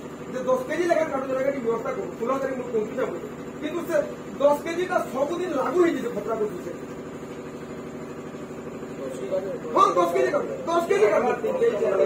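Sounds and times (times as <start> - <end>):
machine humming: 0.0 - 12.0.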